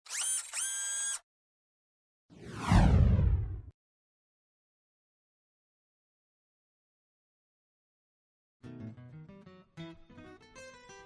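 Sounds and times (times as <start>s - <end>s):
falling swoosh: 2.3s - 3.7s
short bright rising tones: 2.3s - 3.7s
deep rumble: 2.4s - 3.7s.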